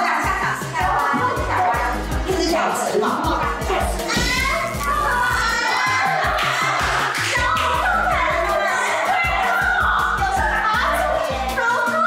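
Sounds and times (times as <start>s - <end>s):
pop music with steady beat: 0.0s - 12.0s.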